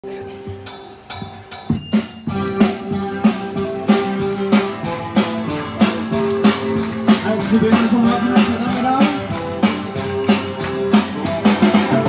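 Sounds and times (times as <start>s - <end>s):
sharp percussive hits: 0.4s - 12.0s
live band held chord: 2.3s - 12.0s.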